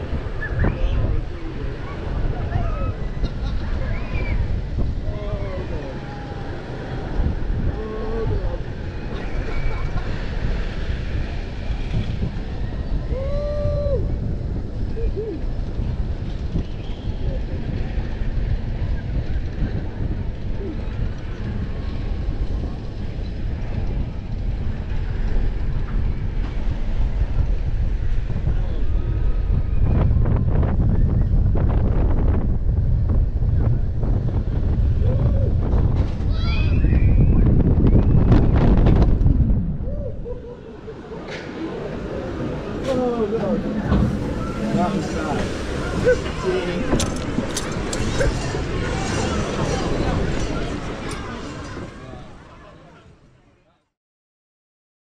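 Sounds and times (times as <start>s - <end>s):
wind rushing over microphone: 0.0s - 52.7s.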